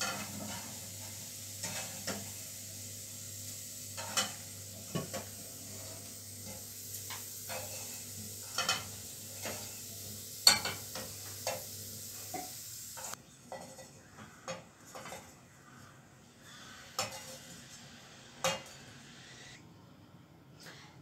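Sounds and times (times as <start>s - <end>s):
oil sizzling: 0.0s - 13.2s.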